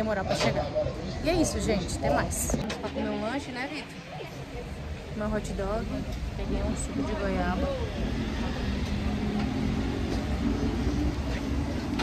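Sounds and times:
street traffic rumble: 0:00.0 - 0:12.0
faint engine hum: 0:04.4 - 0:12.0.

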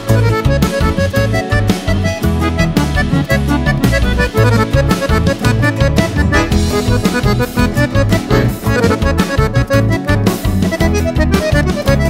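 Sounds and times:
accordion melody: 0:00.0 - 0:12.0
pulsing bass beat: 0:00.1 - 0:12.0.

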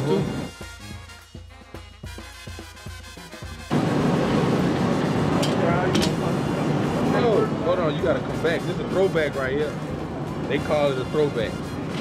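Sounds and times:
steady machine noise: 0:03.7 - 0:12.0.

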